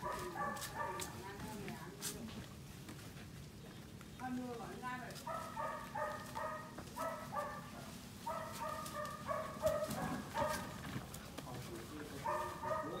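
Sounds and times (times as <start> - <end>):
puppies yipping: 5.2 - 10.9, 12.1 - 13.0.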